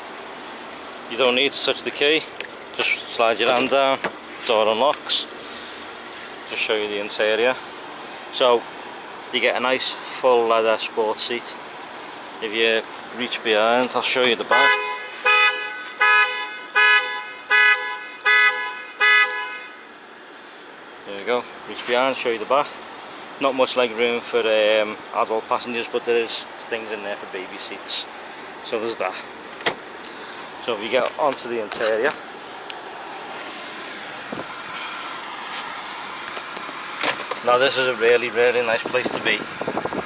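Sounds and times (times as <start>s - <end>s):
traffic din: 0.0s - 40.0s
car horn short honks: 14.5s - 19.8s.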